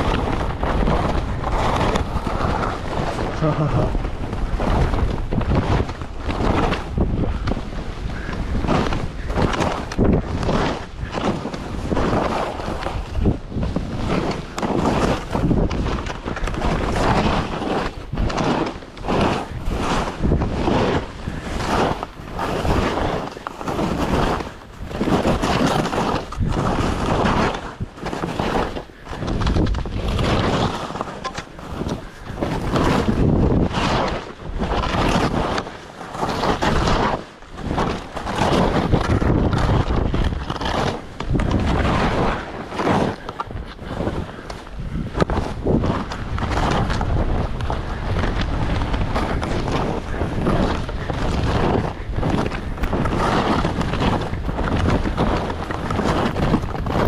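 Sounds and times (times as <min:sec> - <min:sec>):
wind rushing over microphone: 0:00.0 - 0:57.0
skis hissing through snow: 0:16.5 - 0:29.2.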